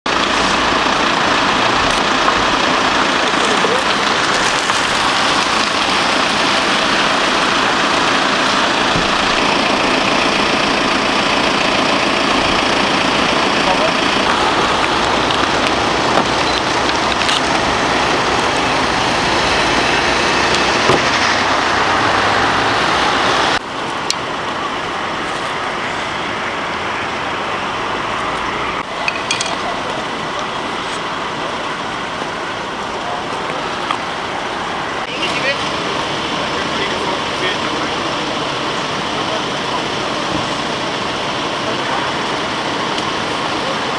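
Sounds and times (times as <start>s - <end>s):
vehicles or machinery running: 0.0s - 43.9s
indistinct voices: 0.1s - 43.9s.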